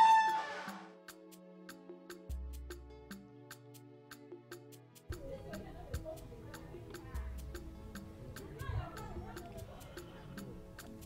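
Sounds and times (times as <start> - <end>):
ticking beat: 4.5 - 11.0.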